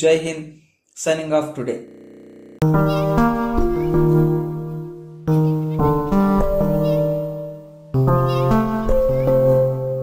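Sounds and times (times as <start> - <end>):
melodic background music: 2.6 - 10.0.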